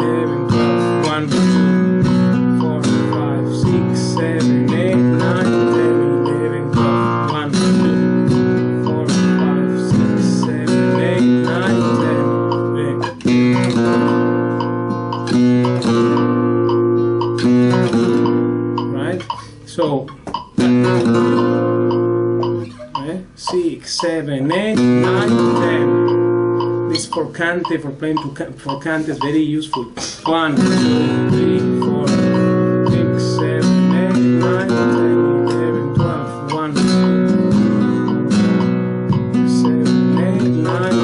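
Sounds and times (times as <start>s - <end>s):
flamenco guitar strumming: 0.0s - 41.0s.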